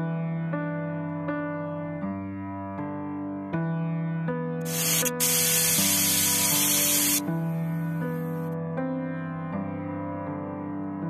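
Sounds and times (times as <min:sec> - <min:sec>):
piano music: 0:00.0 - 0:11.0
pressure cooker steam hiss: 0:04.7 - 0:07.2.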